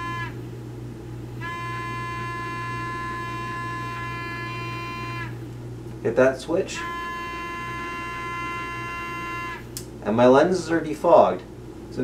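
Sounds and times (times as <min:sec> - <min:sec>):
small fan whining: 0:00.0 - 0:12.0.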